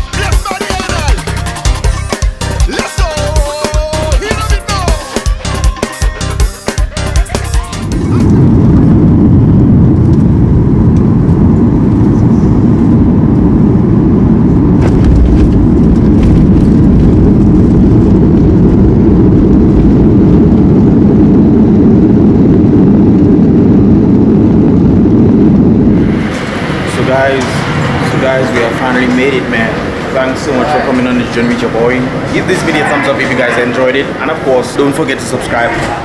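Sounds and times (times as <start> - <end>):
airliner wheels and engines rumbling: 3.3 - 36.0.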